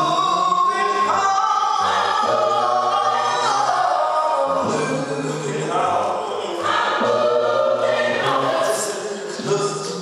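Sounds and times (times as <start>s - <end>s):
choir singing: 0.0s - 10.0s.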